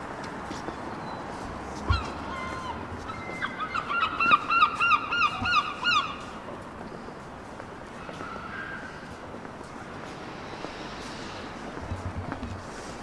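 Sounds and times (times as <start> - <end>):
street background noise: 0.0 - 13.0
gull calling: 1.9 - 6.2.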